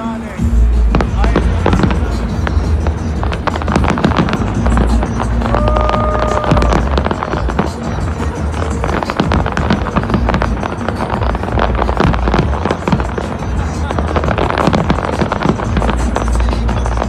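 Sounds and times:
fireworks bursting and crackling: 0:00.0 - 0:17.0
loud music with deep bass: 0:00.0 - 0:17.0.

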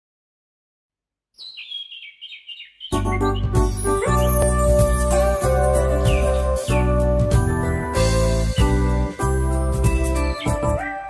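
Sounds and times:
songbird chirping: 0:01.3 - 0:09.2, 0:09.8 - 0:11.0
music with strong low beat: 0:03.0 - 0:10.9.

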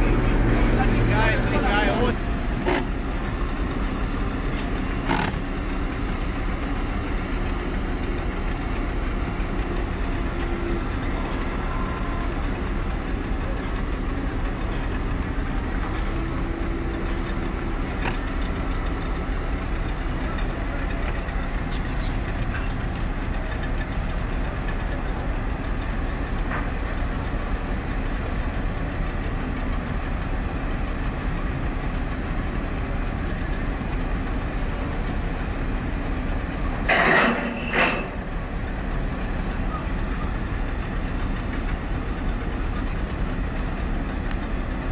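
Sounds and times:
boat engine running: 0:00.0 - 0:44.9.

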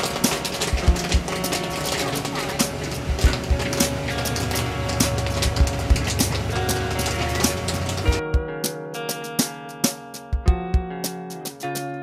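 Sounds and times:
background music with drum beat: 0:00.0 - 0:12.0.

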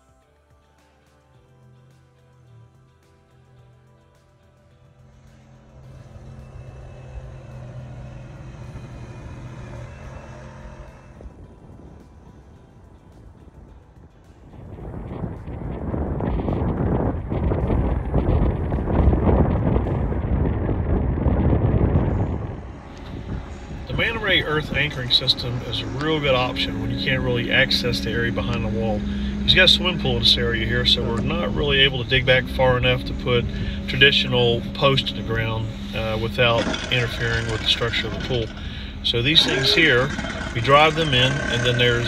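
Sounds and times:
background music low tones: 0:00.0 - 0:42.0
wind buffeting microphone: 0:05.9 - 0:42.0.

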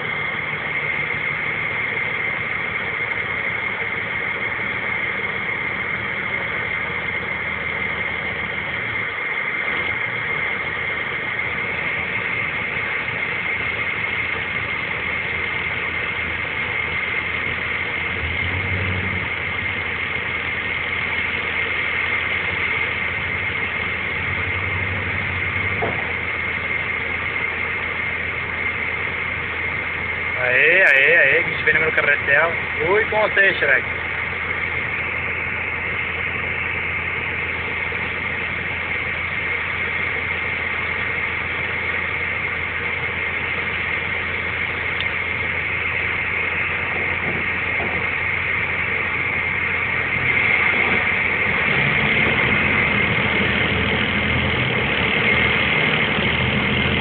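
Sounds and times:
diesel engine running under load: 0:00.0 - 0:57.0
high-pitched whine: 0:00.0 - 0:57.0.

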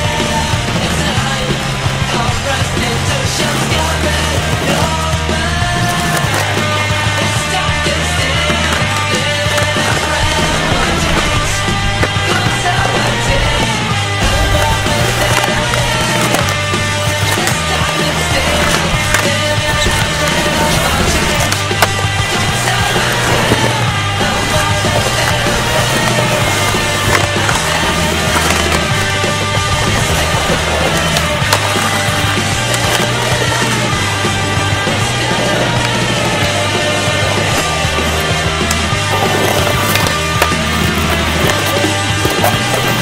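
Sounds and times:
rock music: 0:00.0 - 0:43.0
skateboard knocks: 0:00.0 - 0:43.0
skateboard rolling over brick: 0:00.0 - 0:43.0.

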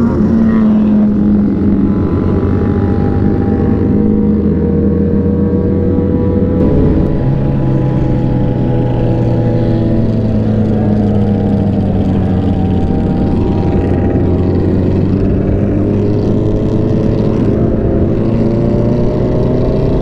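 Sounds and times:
motorcycle engine cruising: 0:00.0 - 0:20.0
wind rushing: 0:06.6 - 0:10.5.

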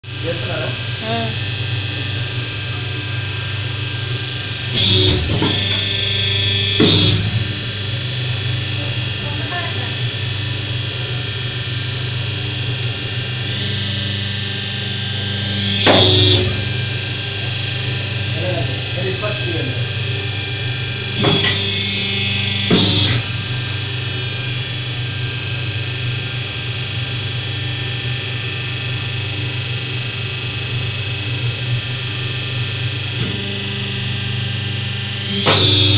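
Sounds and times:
hydraulic press humming: 0:00.0 - 0:35.9.

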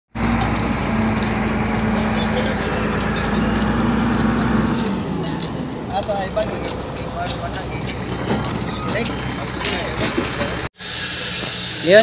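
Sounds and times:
engine running steadily: 0:00.1 - 0:10.7.

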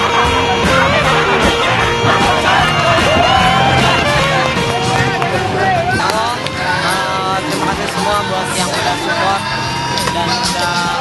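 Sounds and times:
background music: 0:00.0 - 0:11.0
man talking: 0:04.5 - 0:11.0.

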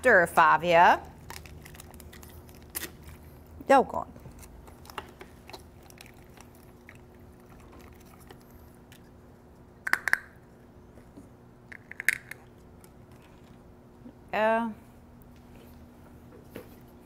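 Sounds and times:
low steady hum: 0:00.0 - 0:17.0
plastic bags crinkling: 0:01.2 - 0:03.4.

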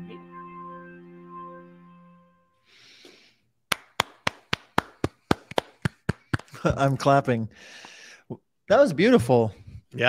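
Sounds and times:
soft music: 0:00.0 - 0:02.8
hand clapping: 0:03.7 - 0:06.6.

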